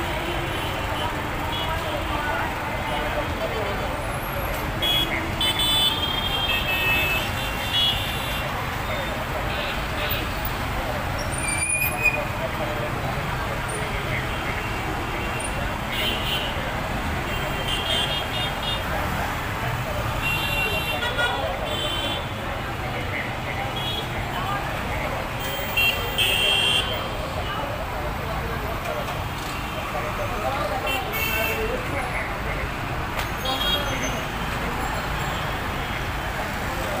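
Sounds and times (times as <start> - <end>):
hubbub of voices: 0.0 - 37.0
traffic noise: 0.0 - 37.0
horns tooting: 4.2 - 10.5, 25.2 - 27.4.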